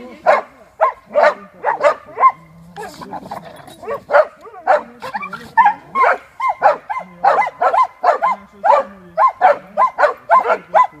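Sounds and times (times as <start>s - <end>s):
dogs barking shrilly: 0.2s - 11.0s
dogs growling: 0.9s - 8.1s.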